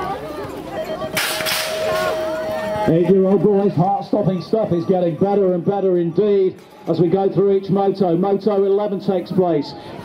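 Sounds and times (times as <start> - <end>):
spectators calling out: 0.0 - 9.8
gate slapping down: 1.2 - 2.0.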